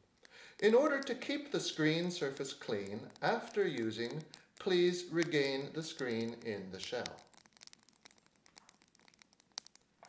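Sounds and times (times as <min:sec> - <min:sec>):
faint crackles and clicks: 0:00.0 - 0:10.0.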